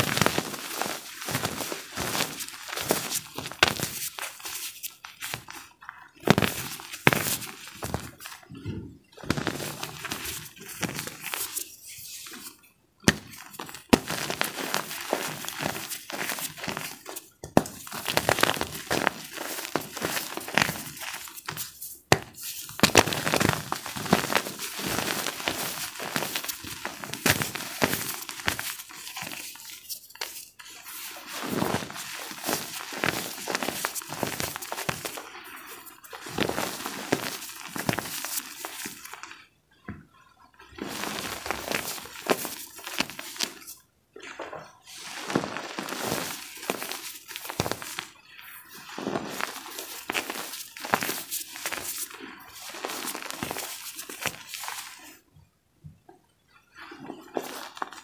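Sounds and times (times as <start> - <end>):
chalk crunching and crackling: 0.0 - 8.6, 9.2 - 39.4, 40.8 - 43.8, 44.9 - 55.2.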